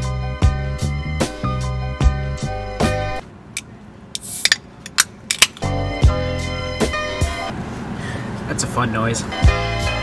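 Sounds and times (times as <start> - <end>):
metallic clicks and taps of a can: 3.6 - 5.7.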